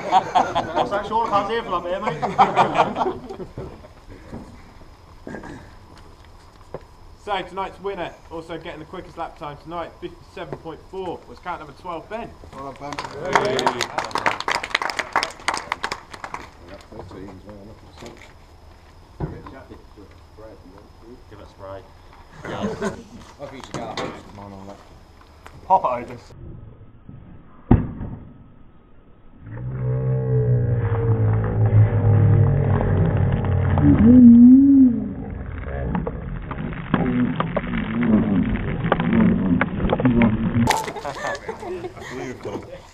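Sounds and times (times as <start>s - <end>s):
group clapping: 12.7s - 17.0s
thump: 27.7s - 28.3s.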